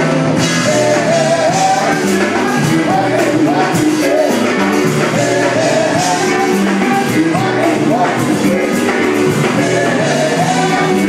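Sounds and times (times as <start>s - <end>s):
funk band playing: 0.0s - 11.0s.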